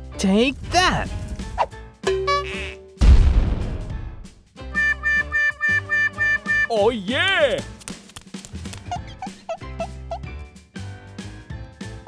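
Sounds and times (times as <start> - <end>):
playful children's music: 0.0 - 3.1, 4.2 - 12.0
loud cartoon impact: 3.0 - 4.1.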